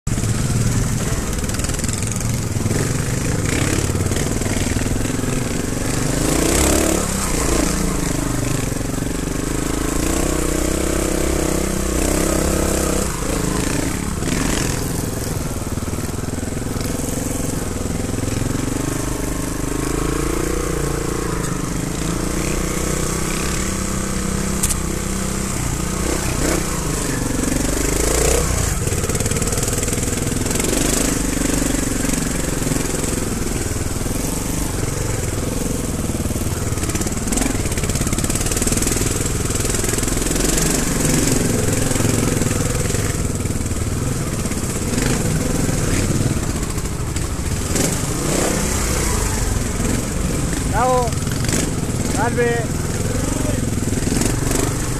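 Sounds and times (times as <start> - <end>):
motorcycle engine revving: 0.1 - 54.9.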